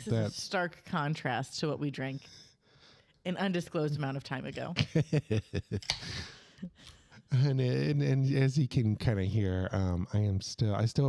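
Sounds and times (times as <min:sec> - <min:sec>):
people laughing: 0:04.8 - 0:06.4.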